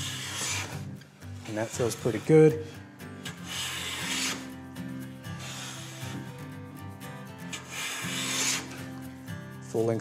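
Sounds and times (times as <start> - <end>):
hand plane swishing stroke: 0.0 - 4.6, 5.4 - 6.6, 7.4 - 9.0
quiet rubbing: 0.0 - 4.6.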